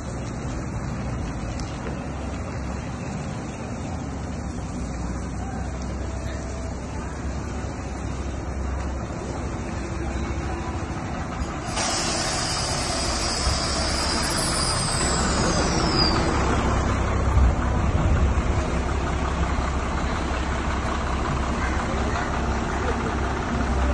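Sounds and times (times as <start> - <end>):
truck engine rumbling: 0.0 - 23.9
air hiss: 11.6 - 16.5.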